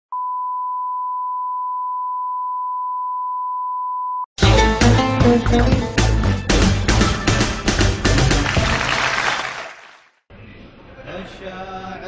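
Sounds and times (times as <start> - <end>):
steady test tone beep: 0.1 - 4.3.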